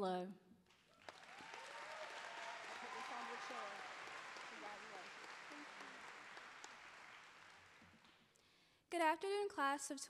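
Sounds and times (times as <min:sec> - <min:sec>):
faint audience applause: 0:00.7 - 0:08.3.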